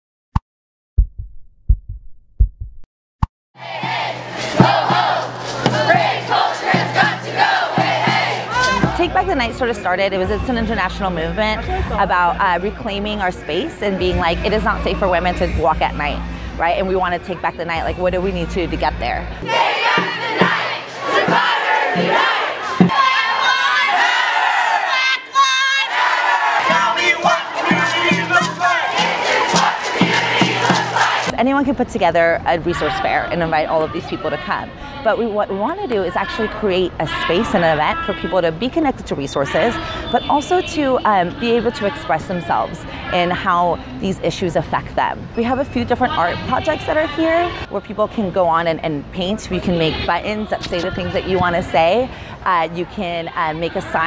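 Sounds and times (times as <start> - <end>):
low thumps: 1.0 - 2.9, 3.6 - 9.4
crowd shouting together: 3.6 - 9.2, 19.4 - 31.3
low musical beat: 3.6 - 9.4, 26.6 - 31.3.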